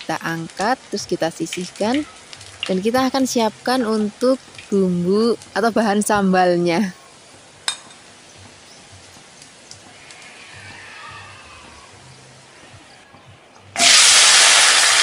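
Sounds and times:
food frying in hot oil: 0.0 - 10.8, 13.8 - 15.0.

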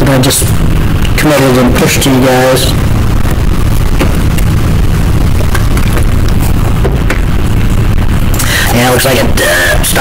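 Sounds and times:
microphone low rumble: 0.0 - 10.0.

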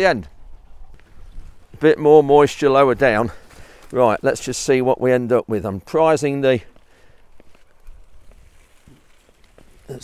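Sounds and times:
wind rumble on microphone: 0.0 - 3.1, 7.8 - 10.0
faint rustling: 6.6 - 10.0.

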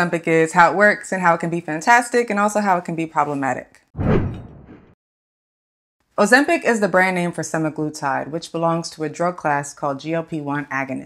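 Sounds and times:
whoosh transition effect: 4.0 - 5.0.

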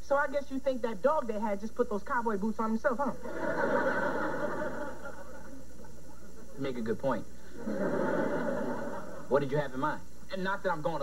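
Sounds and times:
faint steady hiss: 0.0 - 11.0
studio audience laughing: 3.2 - 6.8, 7.5 - 9.3.

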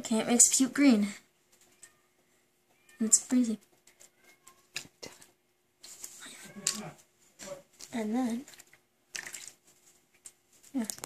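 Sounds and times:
small wet clicks: 1.5 - 11.0
hands squishing in soapy liquid: 7.8 - 10.5.

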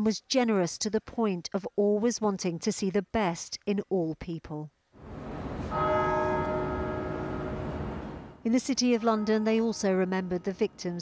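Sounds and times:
outdoor background noise: 0.0 - 11.0
church bell ringing: 5.1 - 8.4.

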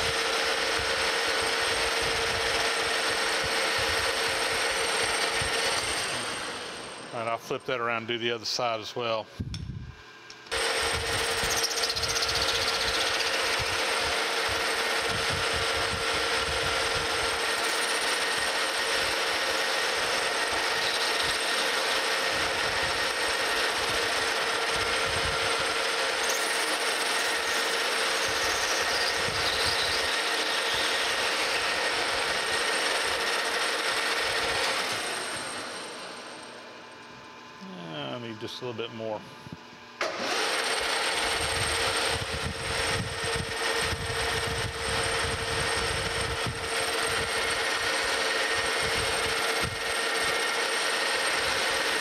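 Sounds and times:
metal lathe whining and cutting: 0.0 - 7.3, 10.5 - 37.5, 40.0 - 52.0.

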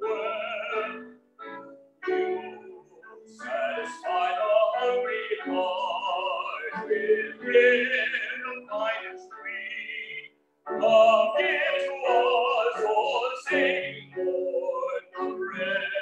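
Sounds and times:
man singing: 0.0 - 1.0, 2.0 - 16.0.

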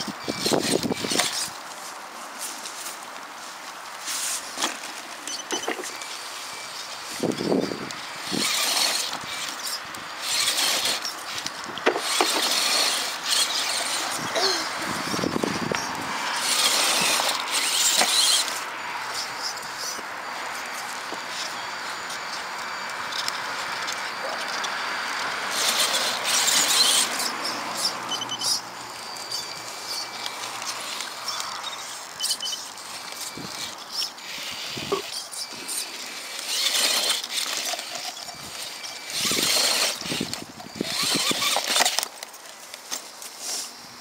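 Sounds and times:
electric drivetrain whirring: 0.0 - 44.0
light ticks and squeaks: 4.6 - 14.3, 16.6 - 43.6
tyres scrabbling on rock: 7.2 - 14.3, 16.4 - 20.1, 32.3 - 43.2.

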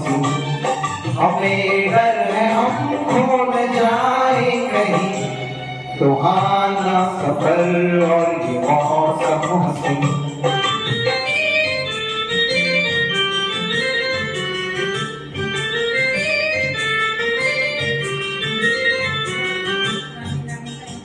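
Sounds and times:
bass accompaniment: 0.0 - 21.0
electronic keyboard melody: 0.0 - 21.0.

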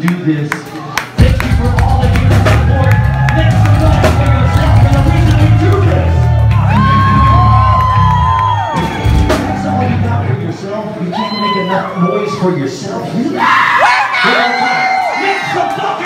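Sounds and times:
rock band playing: 1.2 - 11.1
crowd cheering and whooping: 2.0 - 10.4, 11.0 - 12.7, 13.3 - 16.0.

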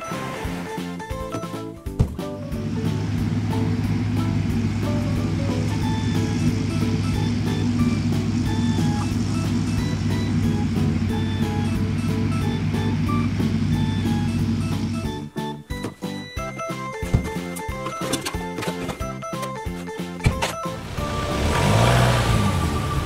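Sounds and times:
light background music: 0.0 - 23.0
toy engine rumble: 2.6 - 15.2.

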